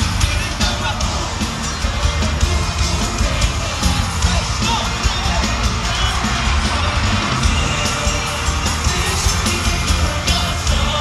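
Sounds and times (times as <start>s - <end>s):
audience cheering and yelling: 0.0s - 11.0s
men singing: 0.0s - 11.0s
pop backing music with drums: 0.0s - 11.0s.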